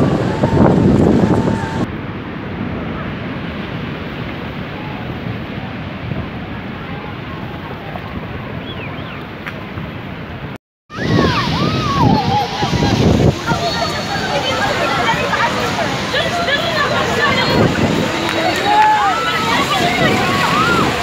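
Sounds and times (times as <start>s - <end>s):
flowing floodwater: 0.0s - 21.0s
sea surf rushing: 0.0s - 21.0s
wind on microphone: 0.0s - 21.0s
voices calling out: 10.9s - 21.0s.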